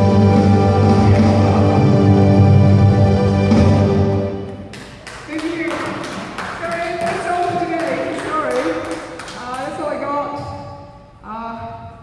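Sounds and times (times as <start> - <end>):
backing-track music: 0.0 - 4.8.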